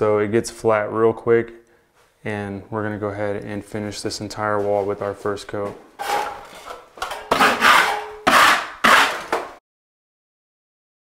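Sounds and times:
trowel scraping joint compound: 6.0s - 9.6s.

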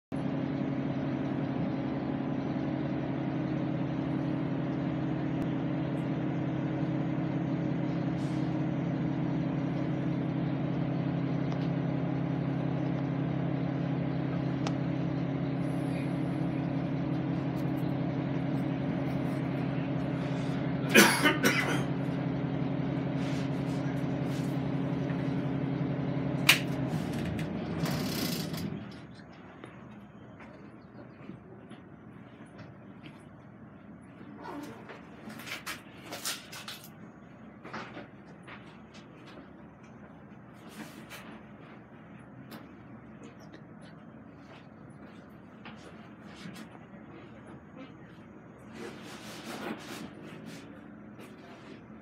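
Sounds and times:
bus engine idling: 0.1s - 52.0s.

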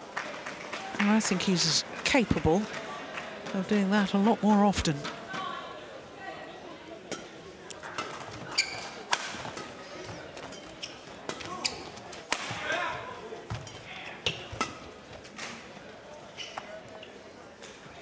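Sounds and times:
shoes squeaking on court: 8.0s - 12.2s, 13.5s - 15.3s, 16.1s - 17.2s.

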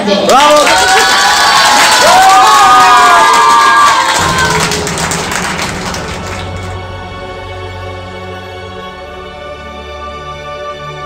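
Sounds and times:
girls cheering and shouting: 0.7s - 4.6s
background music: 4.0s - 11.0s.

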